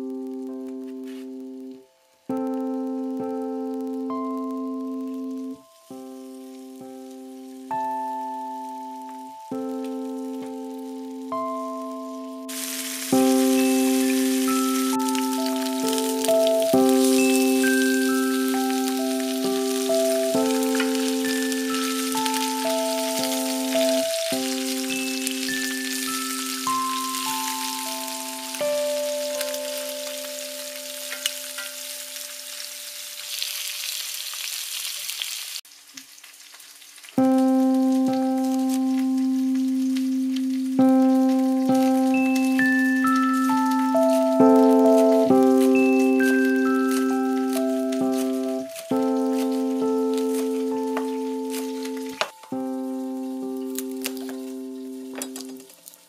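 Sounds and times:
chicken sizzling in hot oil: 0:03.8 - 0:56.0
mallet percussion melody: 0:12.5 - 0:31.9, 0:40.8 - 0:52.6.

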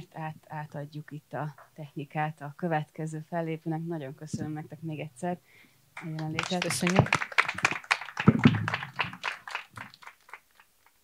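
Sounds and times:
small audience applauding: 0:06.0 - 0:11.0.

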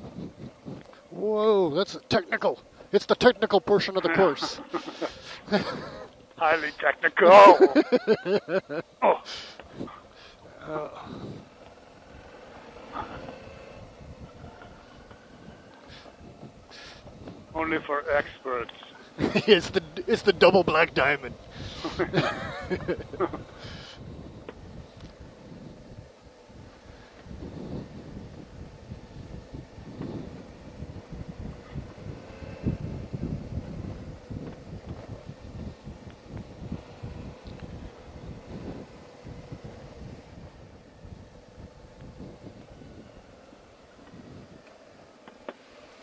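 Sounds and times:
wind buffeting microphone: 0:00.0 - 0:01.1, 0:09.6 - 0:18.4, 0:19.1 - 0:44.9
motorcycle engine running: 0:00.0 - 0:01.8, 0:08.4 - 0:17.6, 0:18.7 - 0:45.8.

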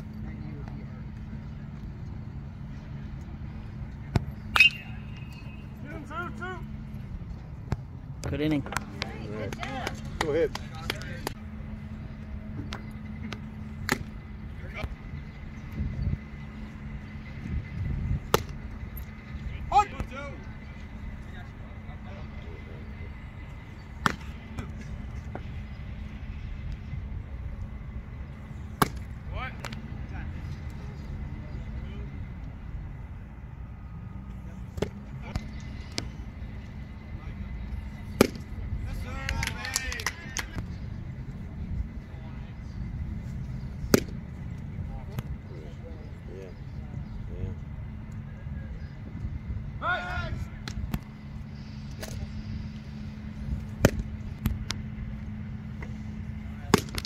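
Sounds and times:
steady low hum: 0:00.0 - 0:57.0
baseballs popping into mitt: 0:12.6 - 0:14.2, 0:24.0 - 0:24.7, 0:28.8 - 0:29.8, 0:38.1 - 0:38.5, 0:43.8 - 0:44.2, 0:50.6 - 0:51.1, 0:53.6 - 0:54.8, 0:56.7 - 0:57.0.

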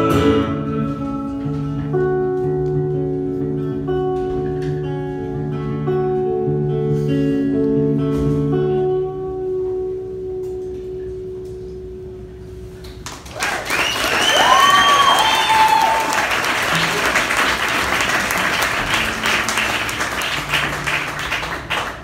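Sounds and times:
audience applause and cheering: 0:13.0 - 0:22.0.

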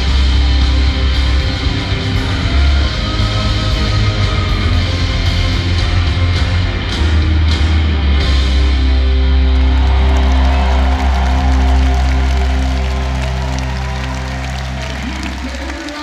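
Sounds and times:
deep bass drone: 0:00.0 - 0:15.6
crowd cheering and clapping: 0:00.0 - 0:16.0.

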